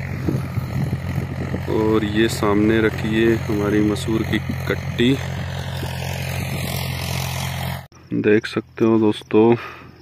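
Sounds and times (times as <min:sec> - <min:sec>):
tractor engine running: 0:00.0 - 0:07.9.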